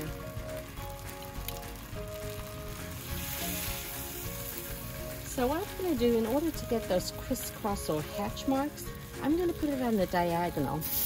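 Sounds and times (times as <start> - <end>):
background music with held notes: 0.0 - 11.0
steak sizzling in a skillet: 0.0 - 11.0.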